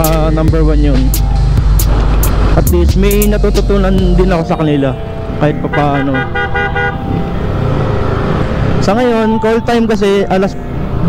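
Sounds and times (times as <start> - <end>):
man speaking: 0.0 - 1.2, 2.6 - 6.3, 8.8 - 10.6.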